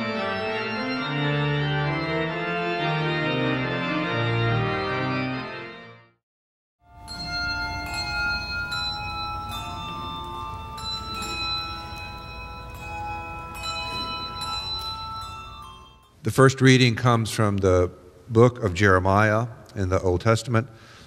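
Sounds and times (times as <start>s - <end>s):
bells ringing: 6.8s - 16.2s.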